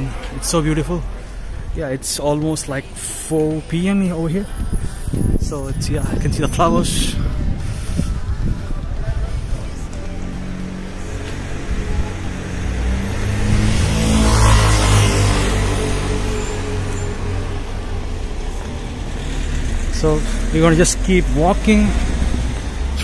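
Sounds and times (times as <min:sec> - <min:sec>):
car passing: 0:02.8 - 0:23.0.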